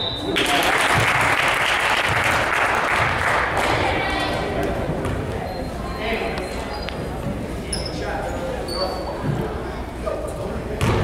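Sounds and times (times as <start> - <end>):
murmur of voices in gym: 0.0 - 11.0
short high squeaks: 7.7 - 9.2.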